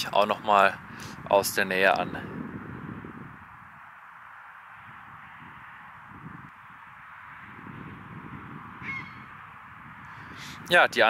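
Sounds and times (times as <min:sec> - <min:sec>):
distant motorway traffic hiss: 0:00.0 - 0:11.0
wind rumble on microphone: 0:00.0 - 0:11.0
bird call: 0:08.8 - 0:09.3.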